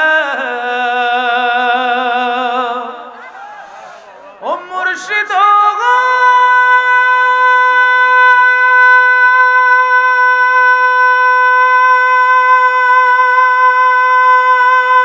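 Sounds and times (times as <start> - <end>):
man singing long high note: 0.0 - 15.0.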